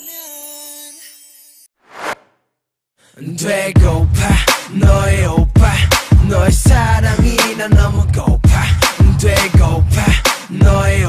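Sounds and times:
whoosh sound effect: 1.8s - 2.4s.

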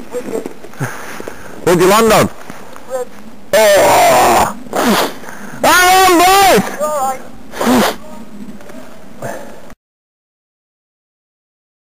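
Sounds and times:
person calling out wordlessly: 5.6s - 8.3s.

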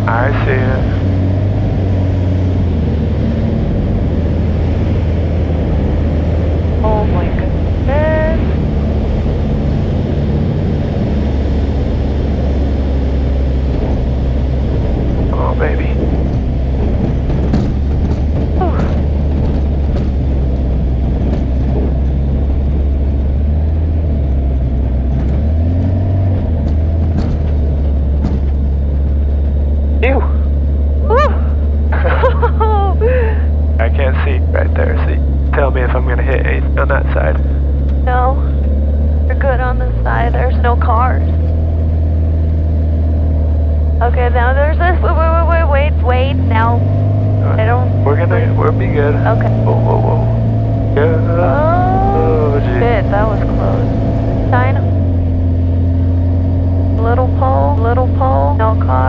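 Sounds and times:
light aircraft engine drone: 0.0s - 59.0s.

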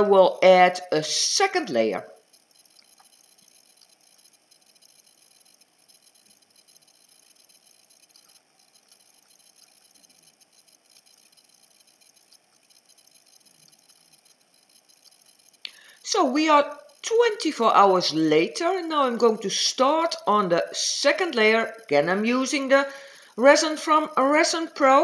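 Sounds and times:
faint room tone hiss: 0.0s - 25.0s.

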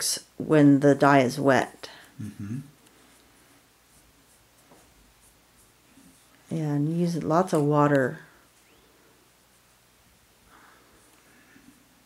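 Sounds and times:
paintbrush brushing on silk: 3.0s - 12.0s.

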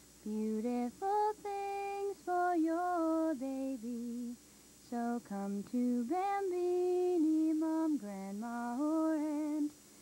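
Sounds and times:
woman singing jingle melody: 0.2s - 9.8s.

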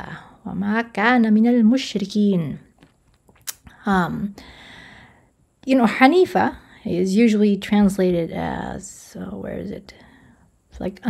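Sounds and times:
woman speaking: 0.0s - 2.8s, 3.5s - 4.4s, 5.6s - 10.0s, 10.7s - 11.0s.

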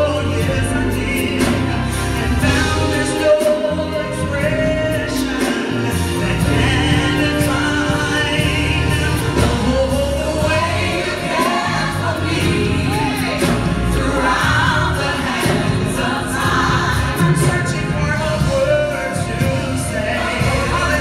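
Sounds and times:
band accompaniment: 0.0s - 21.0s.

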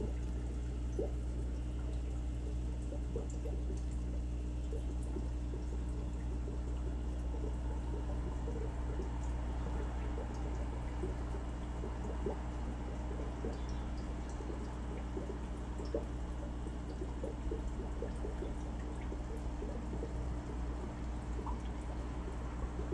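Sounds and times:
filter equipment humming: 0.0s - 22.9s
small pops and drips: 0.0s - 22.9s
water trickling and bubbling: 0.0s - 22.9s.

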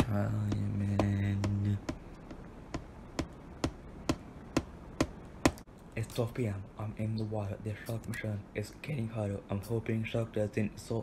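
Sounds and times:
steady beat of sharp taps: 0.0s - 5.7s.

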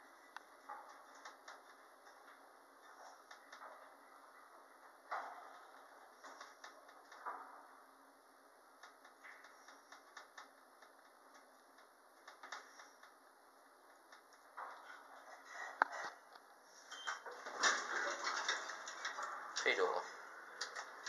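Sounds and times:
elevator running noise: 0.0s - 21.0s.

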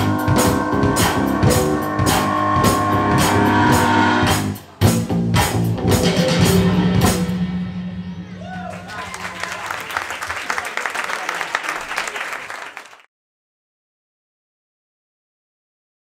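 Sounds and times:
drum kit hits: 0.0s - 8.0s
live band playing: 0.0s - 8.4s
audience applause: 8.4s - 13.1s.

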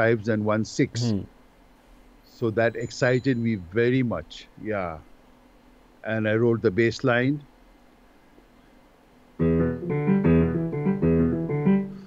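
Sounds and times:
keyboard bass-line notes: 9.4s - 12.0s.

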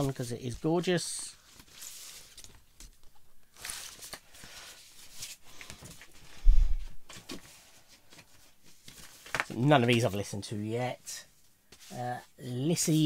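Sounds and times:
paper and card rustling: 0.0s - 6.4s, 7.0s - 10.3s.

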